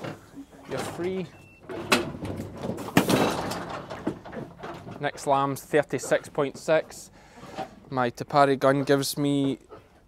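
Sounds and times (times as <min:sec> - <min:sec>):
rattling and scuffling: 0:00.0 - 0:07.9.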